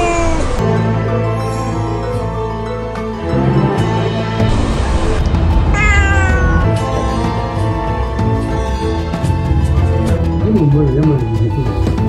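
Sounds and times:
cat meowing: 0.0s - 0.6s, 5.7s - 6.8s
background music: 0.0s - 12.0s.

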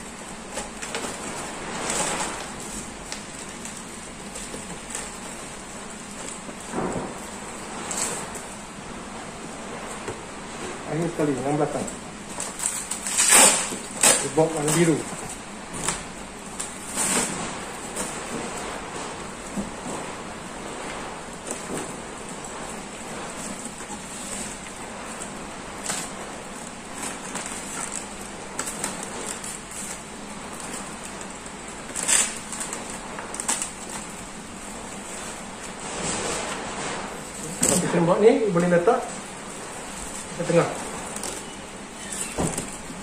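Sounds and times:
rustling and crinkling of foil bag: 0.0s - 43.0s
sharp crackles: 10.5s - 34.3s.

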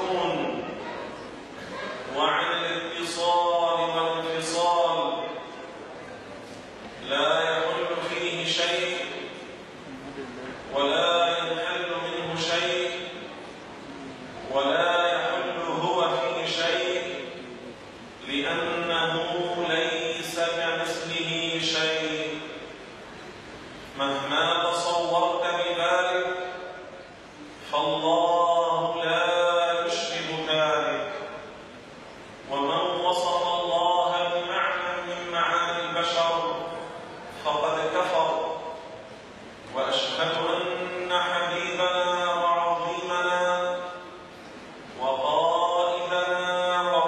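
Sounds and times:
man speaking into a microphone: 0.0s - 0.8s, 2.0s - 6.1s, 6.9s - 22.8s, 23.9s - 31.6s, 32.5s - 44.2s, 44.9s - 47.0s.

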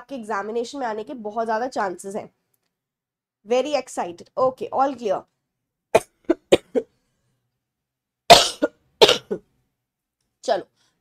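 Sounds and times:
woman coughing: 6.0s - 6.9s, 8.3s - 9.5s.

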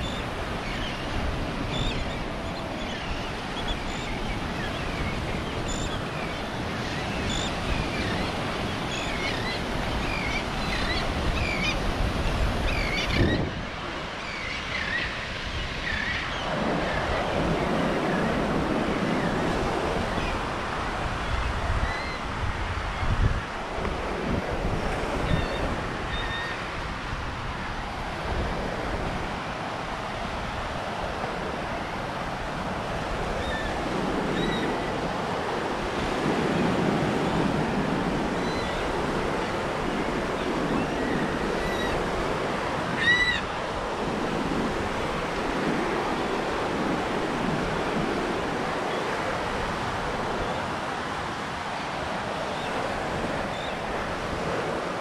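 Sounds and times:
waves washing onto sandy beach: 0.0s - 55.0s
wind rumbling on microphone: 0.0s - 55.0s.

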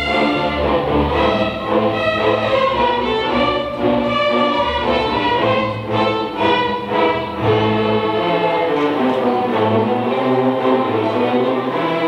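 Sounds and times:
string orchestra playing a tango: 0.0s - 12.0s.

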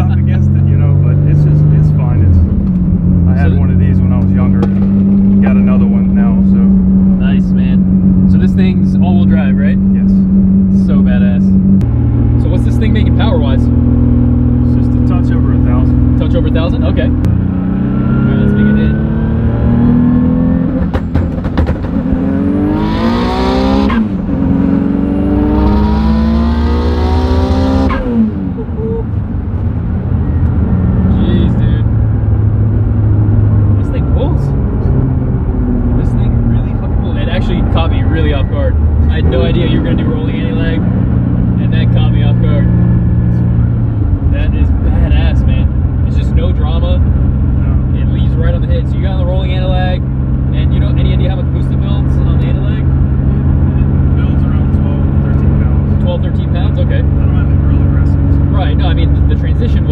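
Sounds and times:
car engine revving: 0.0s - 59.9s.

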